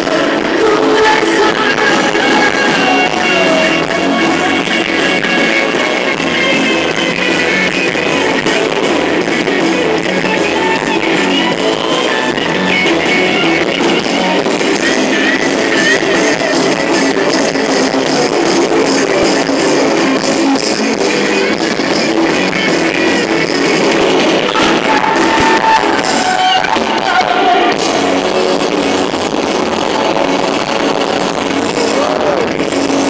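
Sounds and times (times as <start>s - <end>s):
electric guitar: 0.0s - 33.0s
live rock worship band: 0.0s - 33.0s.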